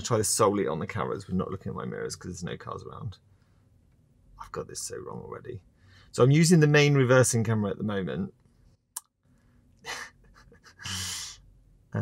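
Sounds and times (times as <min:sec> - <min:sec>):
man's breathy laugh puffs: 0:09.8 - 0:11.4.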